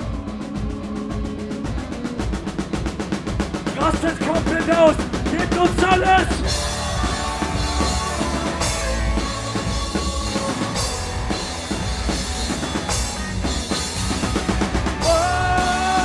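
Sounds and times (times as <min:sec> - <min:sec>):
drum kit: 0:00.0 - 0:16.0
live rock band playing: 0:00.0 - 0:16.0.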